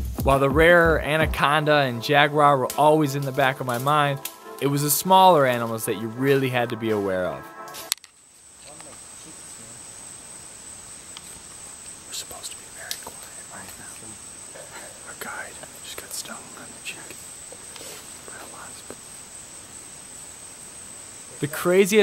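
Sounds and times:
insects droning: 0.0 - 22.0
faint rustles and clicks: 11.1 - 19.4.

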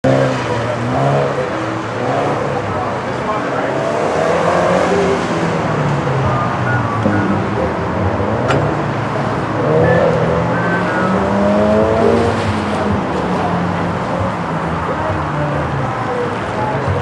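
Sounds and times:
car engine revving: 0.0 - 17.0
tire squeals: 0.1 - 13.2.

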